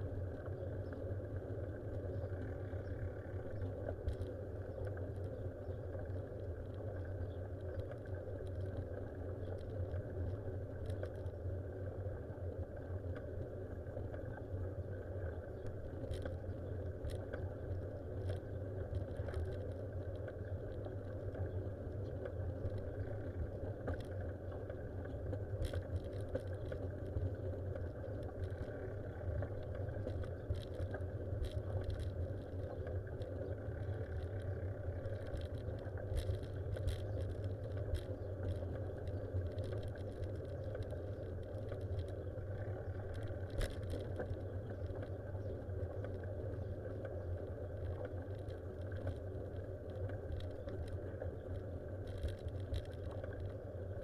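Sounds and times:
light clicks and rattles: 15.6s - 54.0s
vehicle rumble and road noise: 25.2s - 54.0s.

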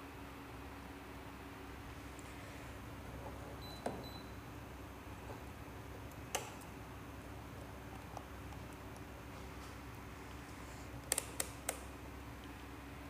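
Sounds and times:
patch cords clicking into sockets: 6.1s - 6.7s, 11.0s - 11.9s.

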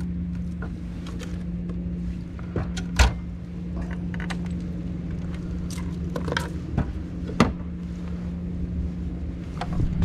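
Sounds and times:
steady low hum: 0.0s - 10.0s
wind rumbling on microphone: 4.0s - 10.0s.

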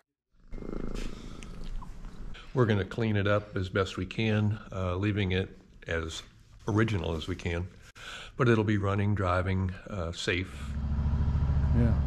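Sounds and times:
cat purring: 0.4s - 2.4s.

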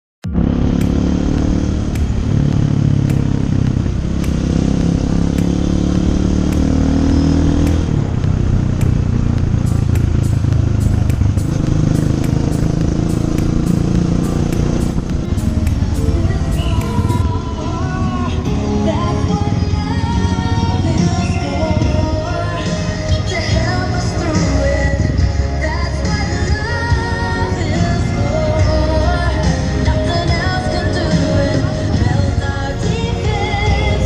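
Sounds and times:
motorcycle engine running: 0.2s - 34.0s
music with a regular beat: 0.8s - 18.9s
person singing: 15.3s - 34.0s.

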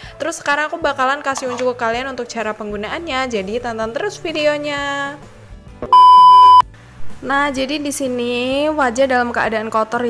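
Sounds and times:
electronic beep: 5.9s - 6.6s.

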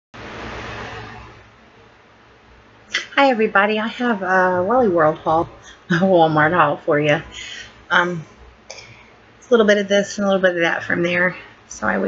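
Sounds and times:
low electrical hum: 0.2s - 12.0s
microphone hiss: 0.2s - 12.0s.

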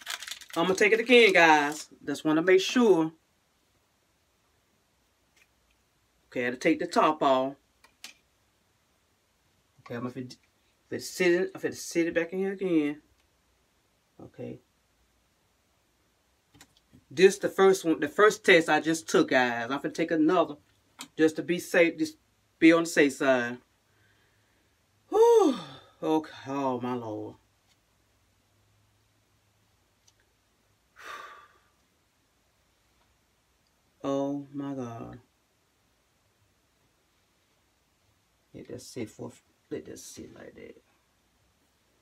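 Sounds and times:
woman sighing: 25.1s - 26.0s, 31.0s - 31.7s.

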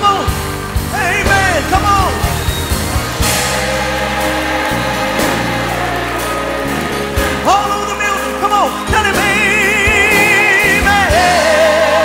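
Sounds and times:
gospel band playing: 0.0s - 12.0s
person singing: 7.4s - 12.0s.

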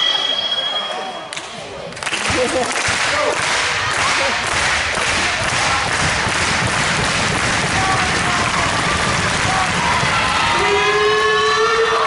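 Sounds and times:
loud crowd din: 0.0s - 12.0s
crowd clapping in rhythm: 1.3s - 11.0s.

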